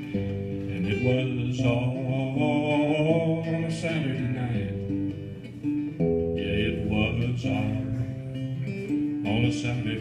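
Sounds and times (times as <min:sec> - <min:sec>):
acoustic guitar strumming: 0:00.0 - 0:10.0
person singing folk song: 0:00.0 - 0:10.0.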